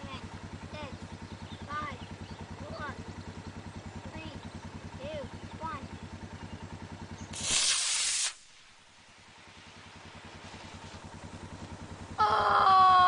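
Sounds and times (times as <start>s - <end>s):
engine idling low throb: 0.0s - 7.6s, 8.4s - 13.0s
rocket motor rushing hiss: 7.3s - 11.1s.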